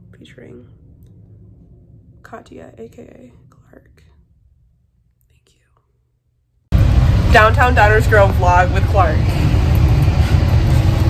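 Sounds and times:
faint whisper: 5.2s - 6.0s.

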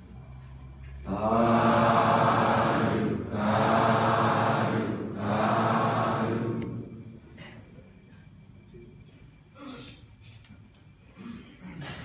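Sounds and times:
voices chanting in unison: 1.0s - 7.2s.

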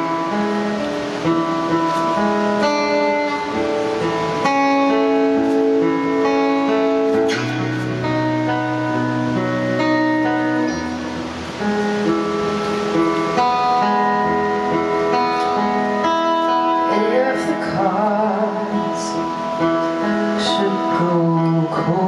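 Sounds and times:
acoustic guitar chords: 0.0s - 22.0s
person singing: 15.1s - 22.0s.

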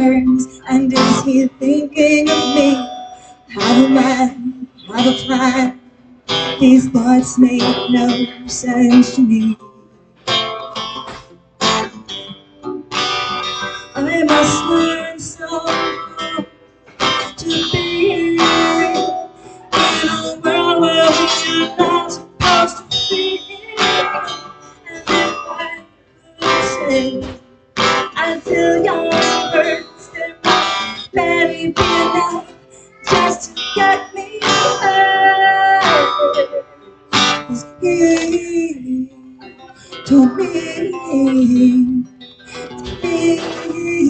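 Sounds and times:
woman singing: 0.0s - 9.6s, 13.9s - 44.0s
acoustic guitar strummed: 0.0s - 44.0s.

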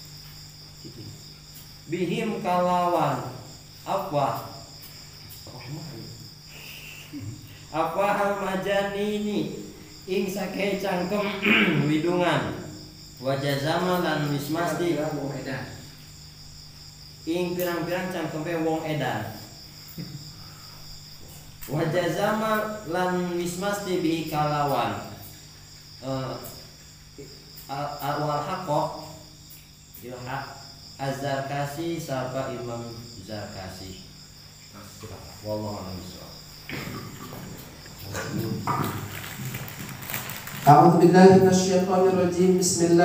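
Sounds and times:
crickets trilling: 0.0s - 43.0s
man's voice: 40.6s - 43.0s.

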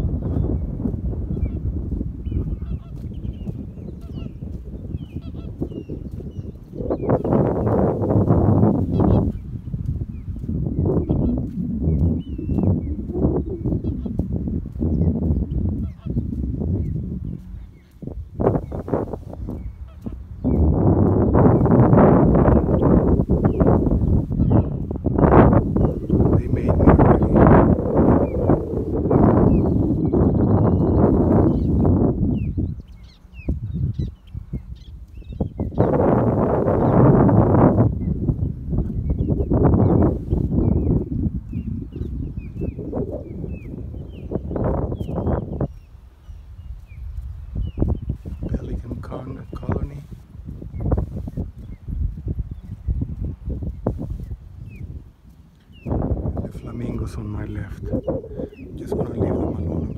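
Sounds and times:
wind buffeting microphone: 0.0s - 59.9s
flamingos honking: 2.2s - 3.4s, 8.8s - 9.4s, 13.7s - 14.2s.

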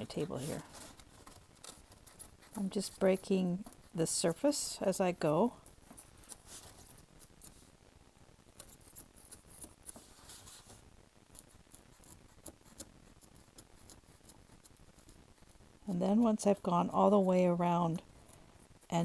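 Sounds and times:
craft knife scoring paper: 0.0s - 4.0s.

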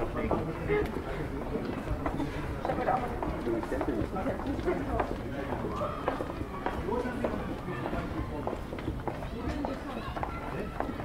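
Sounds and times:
footsteps on stone paving: 0.0s - 11.0s
people talking indistinctly: 0.0s - 11.0s.

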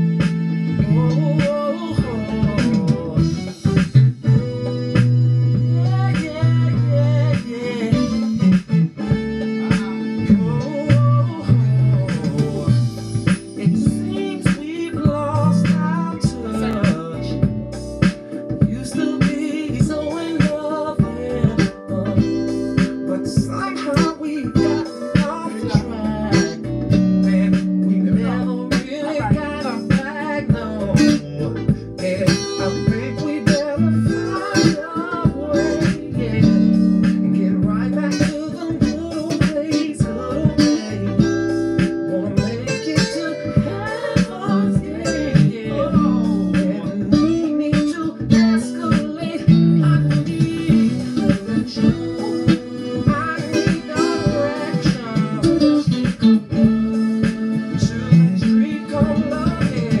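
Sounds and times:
electric guitar playing: 0.0s - 60.0s
recorded r and b song: 0.0s - 60.0s.

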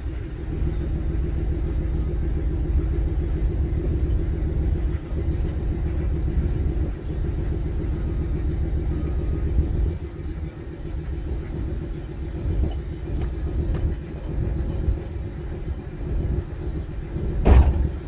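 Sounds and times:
engine running steadily: 0.0s - 18.0s.

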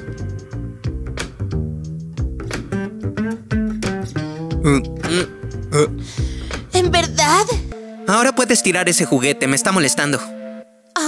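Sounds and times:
background music with plucked guitar: 0.0s - 11.0s.

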